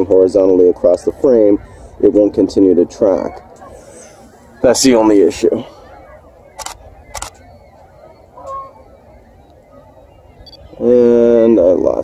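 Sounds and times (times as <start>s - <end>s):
camera shutter clicks: 6.6s - 7.4s
goose honk: 7.0s - 9.1s.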